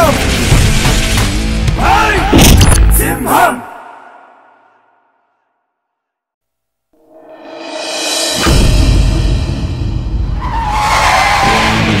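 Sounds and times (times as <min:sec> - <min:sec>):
soundtrack music: 0:07.0 - 0:12.0
tyre squeal of jeep skidding: 0:10.4 - 0:11.8.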